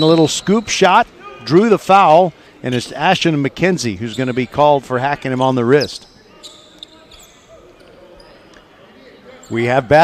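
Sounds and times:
distant court noise: 0.0s - 10.0s.

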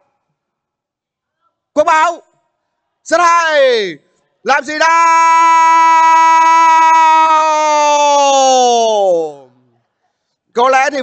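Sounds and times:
man shouting a long vowel: 3.1s - 9.4s.

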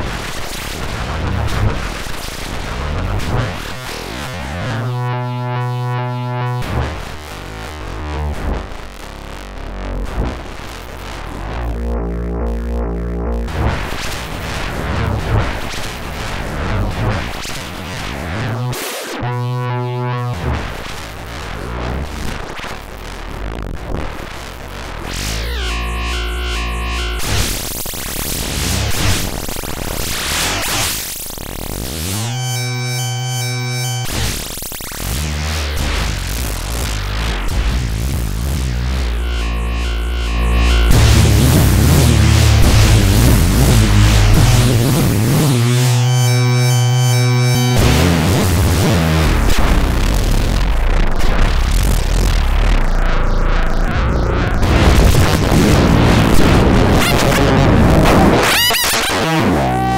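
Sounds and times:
noisy sweeping synthesizer tone: 2.2s - 15.6s, 18.2s - 21.4s, 25.0s - 59.9s.

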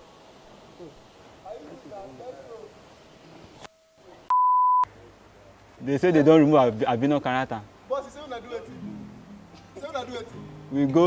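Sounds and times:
short electronic beep: 4.3s - 4.9s.

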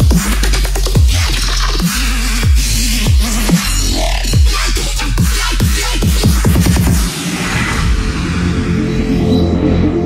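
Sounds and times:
deep sub-bass: 0.0s - 10.0s
dubstep track: 0.0s - 10.0s
pitch-dropping kick drums: 5.2s - 7.2s.

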